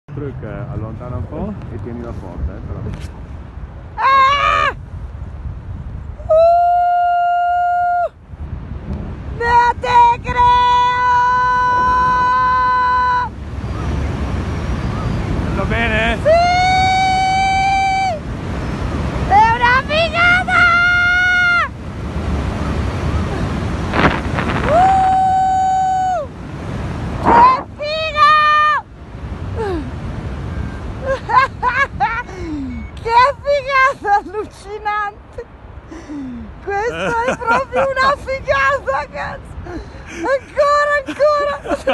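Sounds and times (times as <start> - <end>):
wind rumble on microphone: 0.1 - 33.9.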